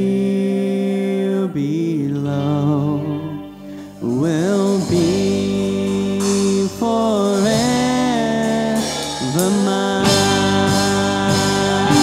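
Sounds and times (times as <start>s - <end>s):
man singing worship song: 0.0s - 12.0s.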